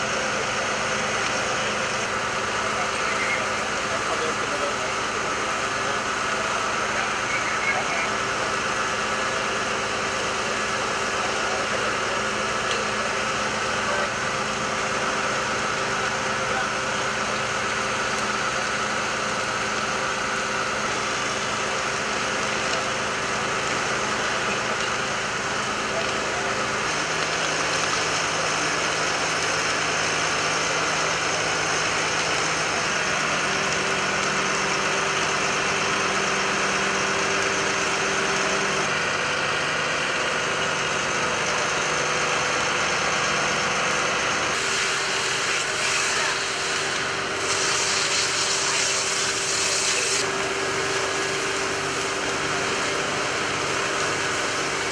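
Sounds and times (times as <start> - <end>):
building burning: 0.0 - 54.9
diesel engines humming: 0.0 - 54.9
hose water hissing: 44.5 - 54.9.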